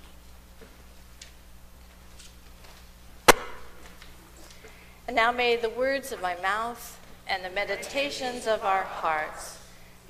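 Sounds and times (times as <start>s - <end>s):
sharp knock: 3.3s - 3.8s.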